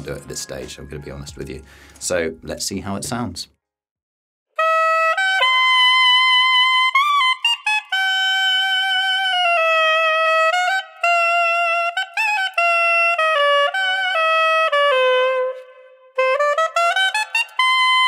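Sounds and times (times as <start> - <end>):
saxophone playing high notes: 4.6 - 18.0.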